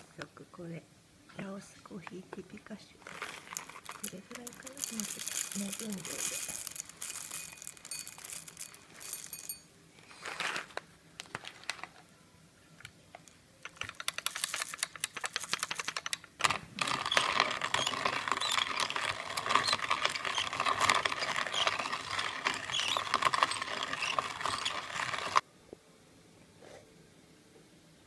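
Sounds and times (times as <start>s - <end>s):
coffee grinder crunching beans: 3.0s - 11.8s, 13.6s - 25.4s
coffee grinder clicking: 3.6s - 9.5s, 13.6s - 25.4s.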